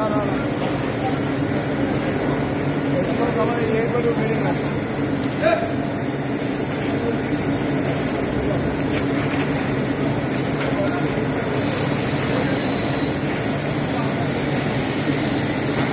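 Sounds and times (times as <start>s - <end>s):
mill machinery humming: 0.0s - 15.9s.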